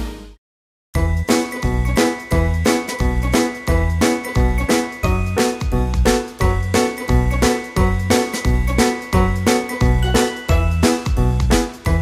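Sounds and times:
background music with steady beat: 1.2s - 12.0s.

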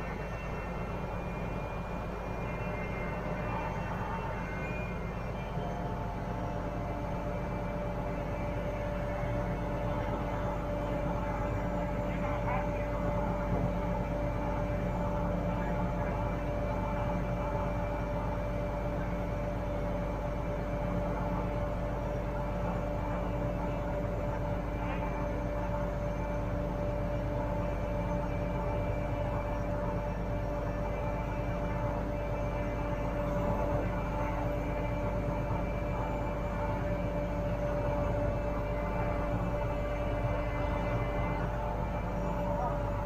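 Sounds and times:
crane engine hum: 0.0s - 43.0s.

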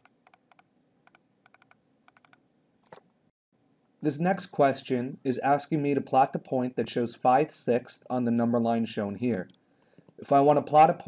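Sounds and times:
computer mouse clicks: 0.0s - 3.0s.

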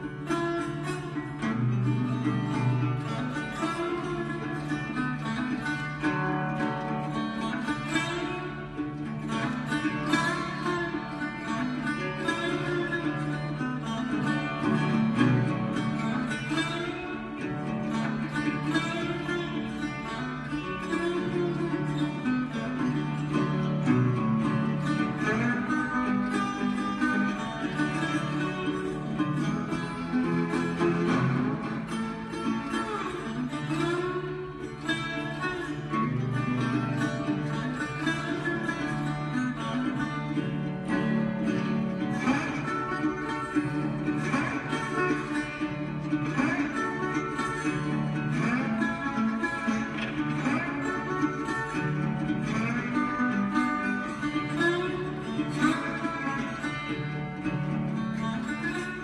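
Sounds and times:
resonator guitar ragtime: 0.0s - 59.0s.

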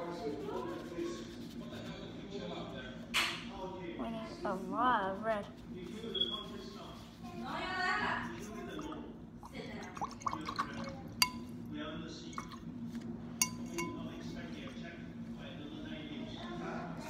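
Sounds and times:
low room hum: 0.0s - 17.0s
hard object clinking on glass: 9.8s - 11.5s, 13.4s - 14.3s.

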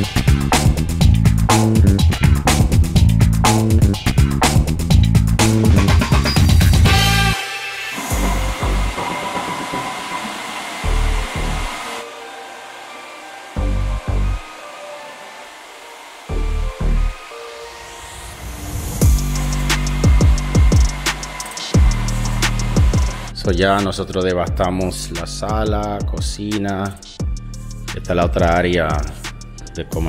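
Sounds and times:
background music with bass: 0.0s - 10.1s, 10.8s - 11.9s, 13.6s - 14.5s, 16.3s - 17.2s, 18.6s - 30.0s
floor grinder hissing: 6.9s - 23.4s.

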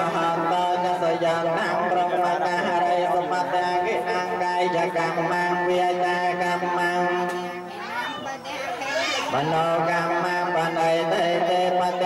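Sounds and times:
chant holding a steady note: 0.0s - 7.7s, 9.3s - 12.0s.

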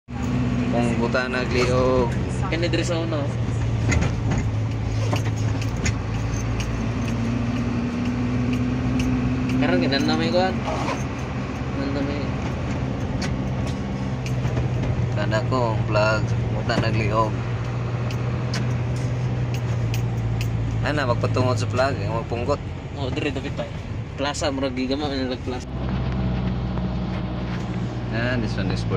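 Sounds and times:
car engine hum: 0.0s - 28.9s
road noise: 0.0s - 28.9s.

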